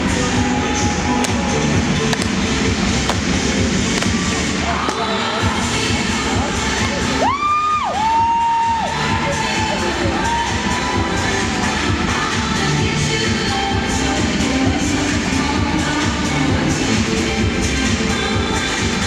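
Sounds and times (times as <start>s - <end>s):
music over sound system: 0.0s - 19.0s
high whoops: 7.2s - 11.1s
crowd cheering: 7.2s - 11.8s.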